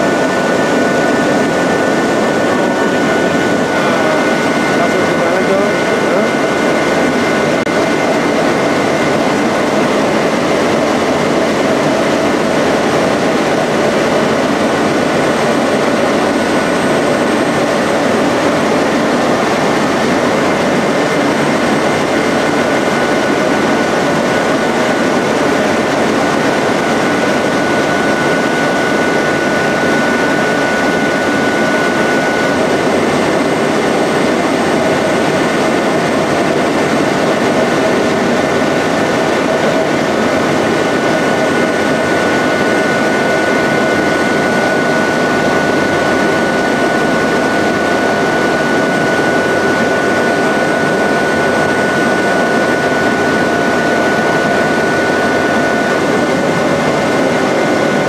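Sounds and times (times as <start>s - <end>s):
paper sheeter machine running: 0.0s - 58.0s.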